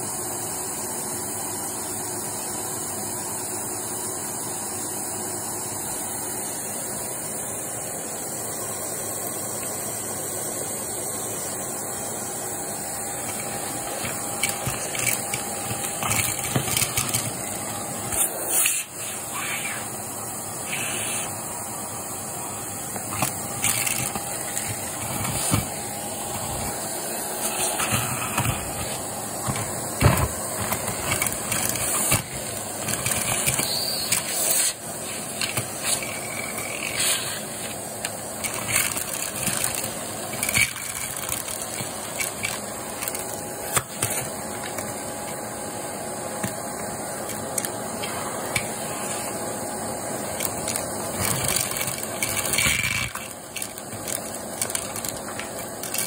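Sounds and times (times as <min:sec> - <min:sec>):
vacuum cleaner motor running: 0:00.0 - 0:56.0
debris rattling in vacuum: 0:12.0 - 0:19.5, 0:20.4 - 0:56.0.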